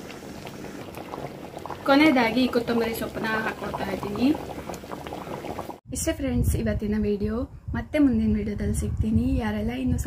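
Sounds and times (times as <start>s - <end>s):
thick gravy bubbling in a pan: 0.0s - 5.8s.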